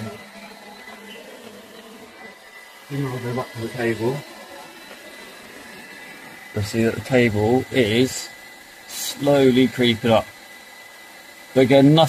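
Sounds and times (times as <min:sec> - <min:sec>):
hair dryer running: 0:00.0 - 0:12.0.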